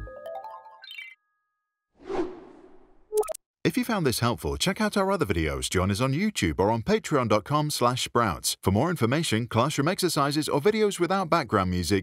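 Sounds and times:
whoosh transition effect: 2.0s - 3.2s.

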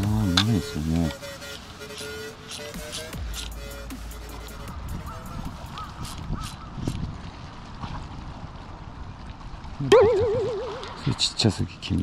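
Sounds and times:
bird calling: 5.0s - 6.8s, 9.8s - 11.1s.

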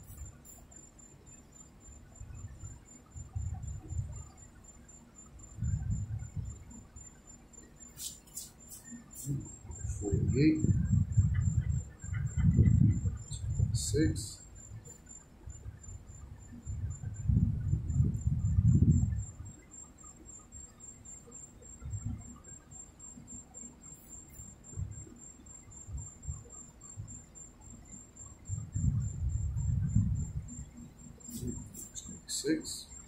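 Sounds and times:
faint high whine: 0.0s - 33.0s.

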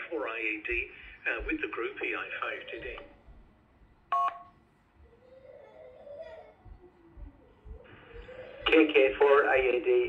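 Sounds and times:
two-tone keypad beep: 4.1s - 4.5s.

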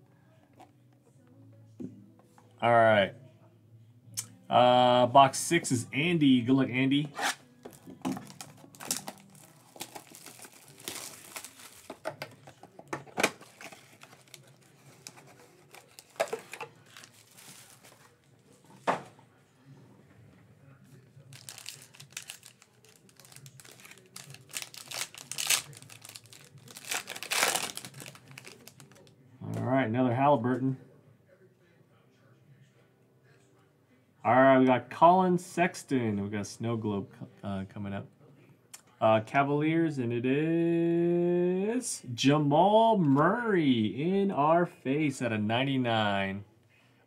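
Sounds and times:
foil card pack crinkling and tearing: 8.2s - 12.1s, 13.2s - 18.1s, 21.3s - 29.0s.

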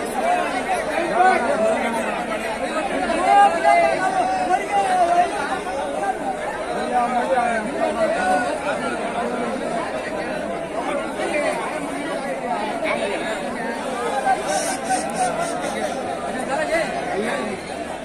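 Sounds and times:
crowd chatter: 0.0s - 18.0s.

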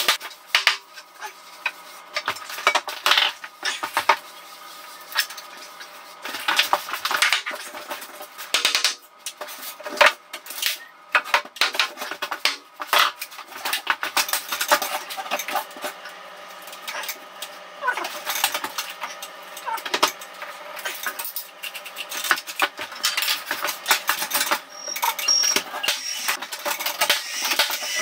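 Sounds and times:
hand tools clinking and rattling: 17.8s - 28.0s.

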